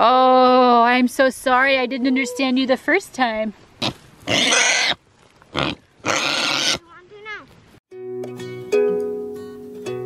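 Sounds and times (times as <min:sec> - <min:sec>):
pig calling: 0:03.8 - 0:06.8.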